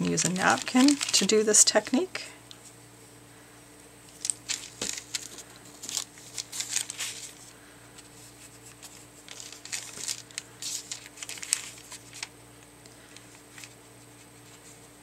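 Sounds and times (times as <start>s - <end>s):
damp paper tearing: 0.1s - 1.4s, 8.6s - 12.3s.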